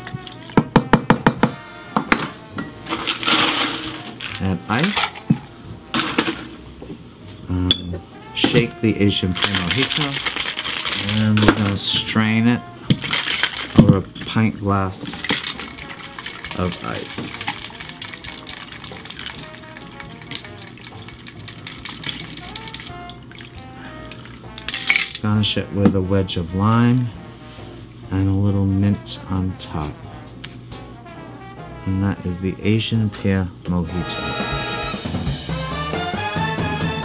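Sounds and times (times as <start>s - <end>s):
quiet background music: 0.0s - 37.0s
ice cubes clattering in metal tin: 2.8s - 5.3s, 5.9s - 6.5s, 9.2s - 12.0s, 12.9s - 14.0s, 15.0s - 23.0s, 24.5s - 25.2s.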